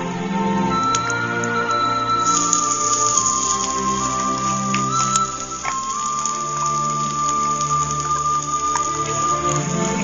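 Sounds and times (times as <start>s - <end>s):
music with long held notes: 0.0s - 10.0s
lentils poured into metal pot: 2.2s - 10.0s.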